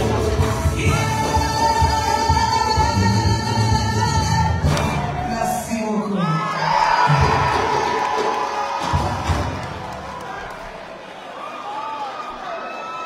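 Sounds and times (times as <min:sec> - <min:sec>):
woman singing over a band: 0:00.7 - 0:06.5
crowd cheering and shouting: 0:04.6 - 0:13.0.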